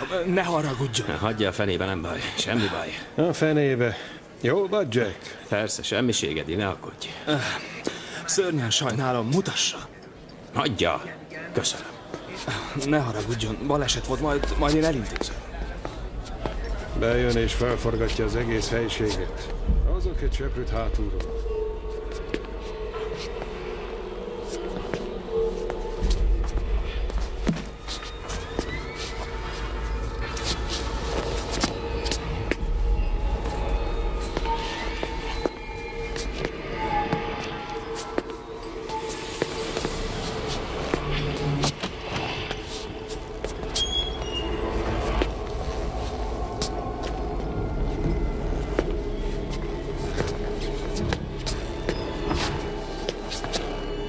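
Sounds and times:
tense film score drone: 12.5 - 54.0.

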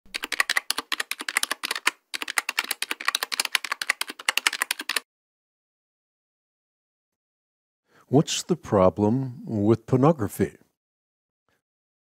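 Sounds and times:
computer keyboard typing: 0.1 - 5.0.

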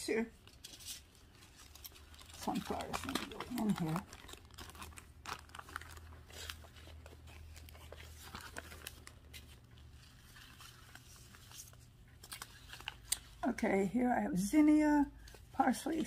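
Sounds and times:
plastic bags and paper rustling: 0.4 - 13.6.

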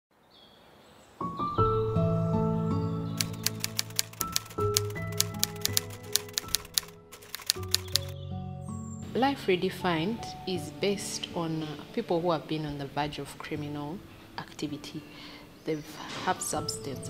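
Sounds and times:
soft background music chords: 1.2 - 17.0
typewriter key clicks: 3.2 - 8.1.

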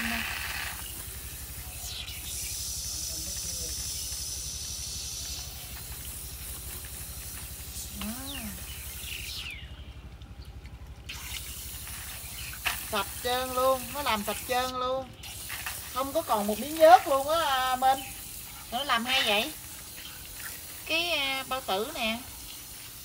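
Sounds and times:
water hissing from hose nozzle: 0.0 - 9.6, 11.0 - 23.0
low steady hum: 0.0 - 23.0.

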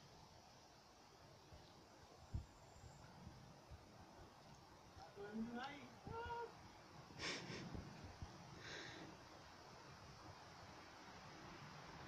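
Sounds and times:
dog breathy puff: 7.2 - 7.9.

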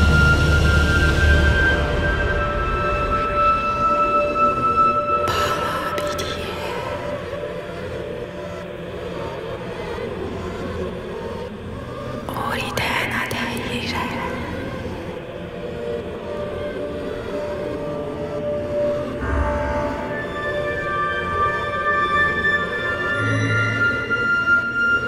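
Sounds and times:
low steady drone: 0.0 - 25.0
sustained tones: 0.0 - 25.0
whispered voices: 5.3 - 7.5, 12.2 - 15.6.

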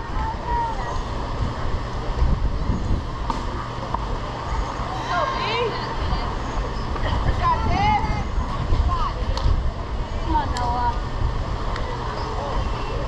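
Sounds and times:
wind rumble on microphone: 0.0 - 4.8, 5.8 - 13.0
distant shouting voices: 0.0 - 13.0.

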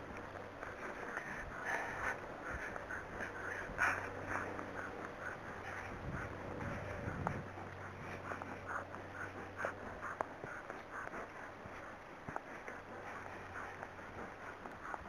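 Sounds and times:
horse hooves walking on grass: 0.0 - 15.0
horse tack clicking: 0.0 - 15.0.

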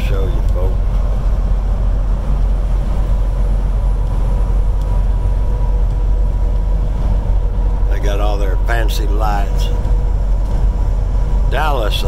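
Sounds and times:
faint steady whine: 0.0 - 12.0
vehicle engine and road noise: 0.0 - 12.0.

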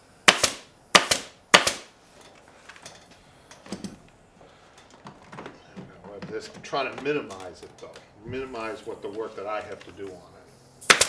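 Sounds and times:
pneumatic staple gun firing: 0.2 - 1.9, 10.8 - 11.0.

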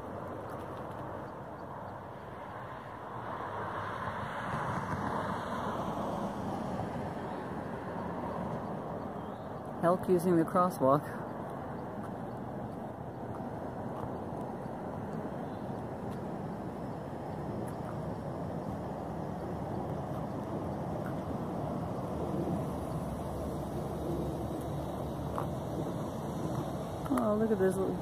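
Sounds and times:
highway traffic rumble: 0.0 - 28.0.

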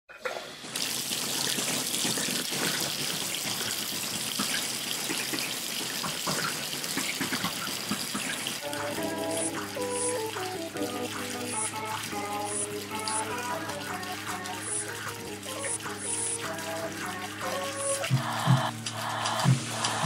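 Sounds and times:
water running from a tap: 0.2 - 20.0
tune of held stepping notes: 8.6 - 20.0.

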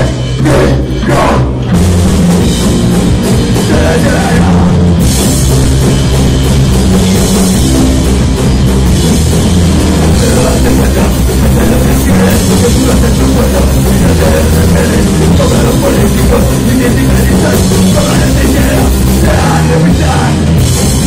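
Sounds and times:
rock band playing loud: 0.0 - 21.0.

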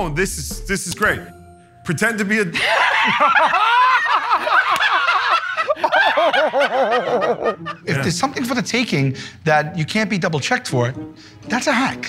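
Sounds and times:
person speaking: 0.0 - 2.6, 7.8 - 12.0
person laughing: 2.5 - 8.1.

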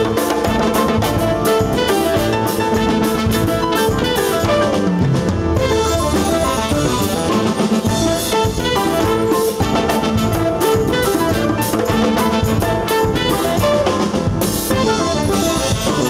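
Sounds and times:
drum kit: 0.0 - 16.0
hand percussion: 0.0 - 16.0
saxophones and trumpets: 0.0 - 16.0.

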